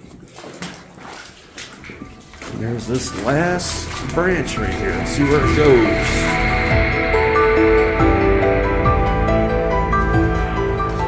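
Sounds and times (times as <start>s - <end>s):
boots splashing through water: 0.0s - 6.7s.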